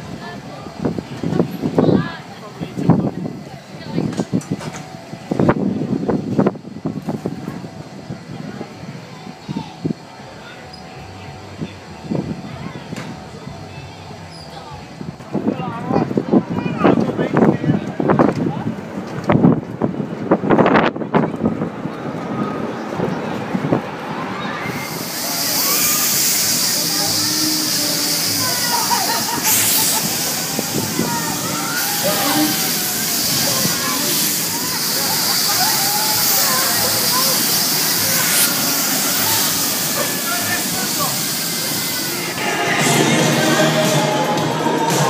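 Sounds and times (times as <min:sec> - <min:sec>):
wind rushing on microphone: 0:00.0 - 0:10.1, 0:14.9 - 0:24.9
people's voices: 0:00.0 - 0:45.0.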